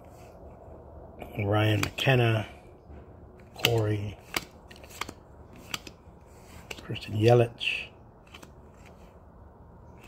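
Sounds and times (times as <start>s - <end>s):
trading cards clicking: 1.7s - 2.1s, 3.4s - 6.9s, 8.2s - 9.1s.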